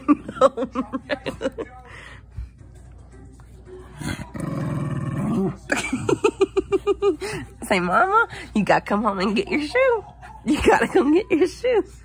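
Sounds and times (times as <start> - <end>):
dog growling: 4.0 - 5.8.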